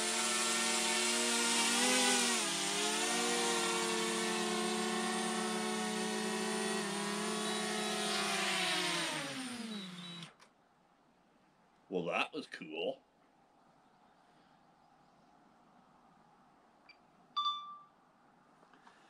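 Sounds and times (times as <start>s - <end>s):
drone propellers whining: 0.0s - 10.4s.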